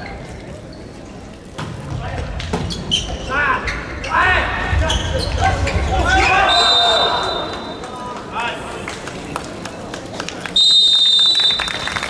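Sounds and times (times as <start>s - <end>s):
voices shouting in hall: 3.3s - 7.9s
shrill whistle blast: 6.3s - 7.7s, 10.6s - 12.0s.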